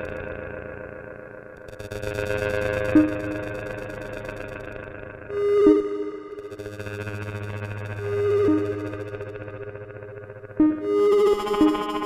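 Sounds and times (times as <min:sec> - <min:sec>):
droning synth tones: 0:00.0 - 0:12.0
low hum: 0:00.0 - 0:12.0.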